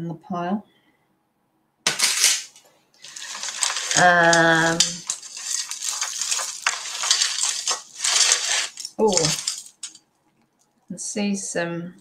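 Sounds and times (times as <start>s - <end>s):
beaded necklaces clinking: 1.9s - 10.0s.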